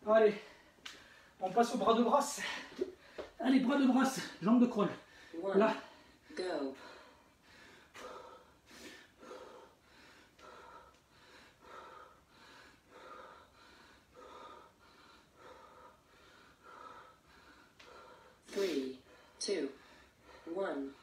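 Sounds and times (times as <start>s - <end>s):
man breathing hard and fast: 0.2s - 1.5s, 2.3s - 3.4s, 4.1s - 21.0s.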